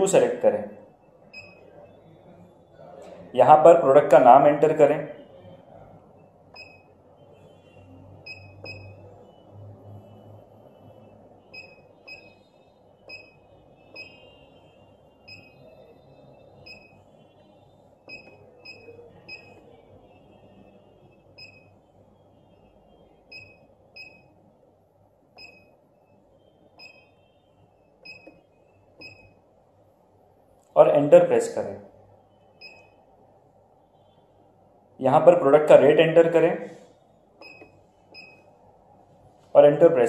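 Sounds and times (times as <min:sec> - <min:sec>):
keypad beeps: 0:01.1 - 0:02.0, 0:06.5 - 0:07.0, 0:07.6 - 0:09.5, 0:11.4 - 0:14.4, 0:15.2 - 0:17.1, 0:18.0 - 0:19.8, 0:21.3 - 0:21.7, 0:23.2 - 0:24.4, 0:25.4 - 0:26.2, 0:26.8 - 0:29.4, 0:32.5 - 0:33.0, 0:37.4 - 0:38.5.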